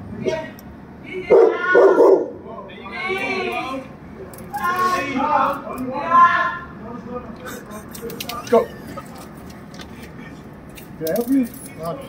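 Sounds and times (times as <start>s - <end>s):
dog barking: 1.3s - 2.3s.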